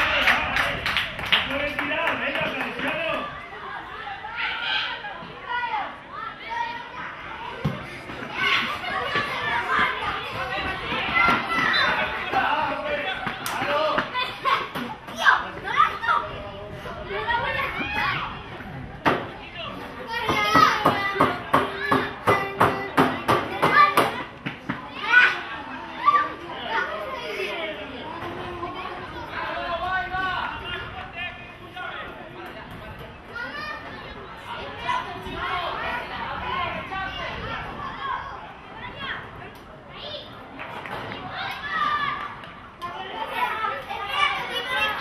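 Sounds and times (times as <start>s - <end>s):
sharp claps: 0.0s - 3.2s, 13.2s - 14.1s
children shouting: 3.1s - 16.4s, 17.1s - 18.6s, 20.0s - 30.8s, 33.2s - 40.4s, 41.0s - 45.0s.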